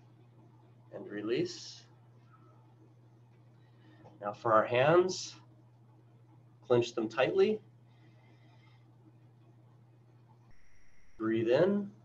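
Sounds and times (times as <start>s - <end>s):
steady low hum: 0.0s - 12.0s
faint hiss: 10.5s - 12.0s.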